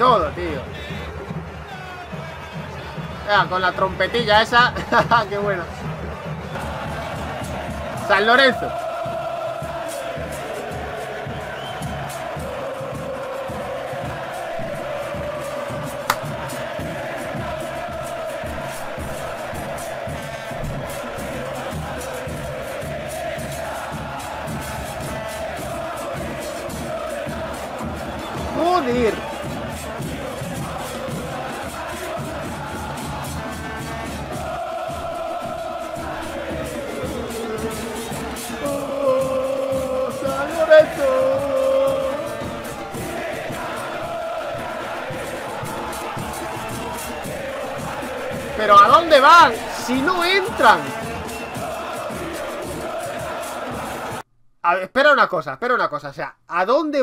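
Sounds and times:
crowd chanting in unison: 0.0 - 54.3
steady drum beat: 0.0 - 54.3.

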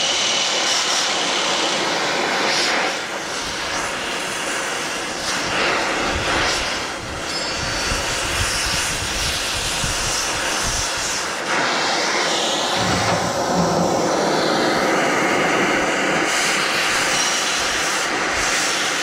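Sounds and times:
low rumble: 12.7 - 15.4.

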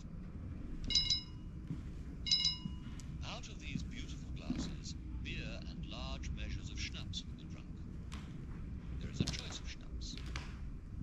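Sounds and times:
chime ringing: 0.9 - 1.4, 2.3 - 2.8.

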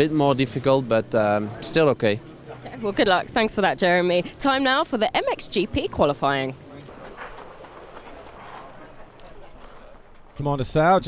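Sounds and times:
distant voices: 0.0 - 11.0.

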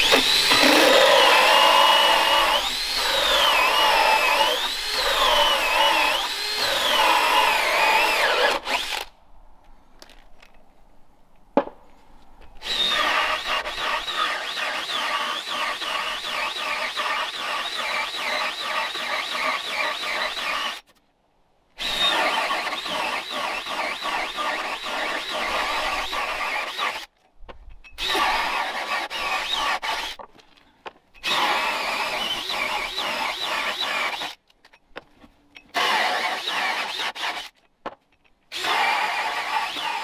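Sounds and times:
drill hole saw cutting wood: 0.0 - 9.1, 12.6 - 20.8, 21.8 - 27.1, 28.0 - 30.2, 31.2 - 34.4, 35.7 - 37.5, 38.5 - 40.0.

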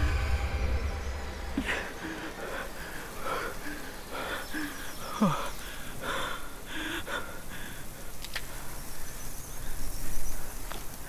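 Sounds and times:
sound sliding down in pitch: 0.0 - 2.3
man panting in ragged gasps: 1.6 - 8.7.

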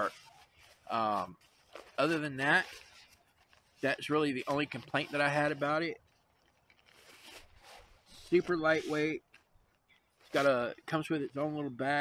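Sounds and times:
fabric stuff sack rustling: 0.0 - 12.0.

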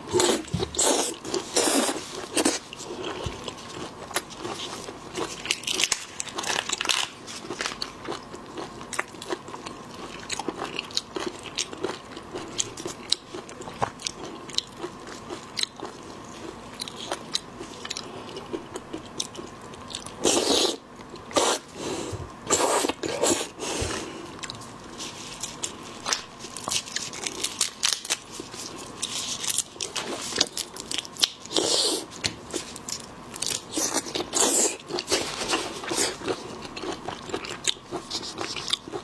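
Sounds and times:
chewing: 33.7 - 39.0.

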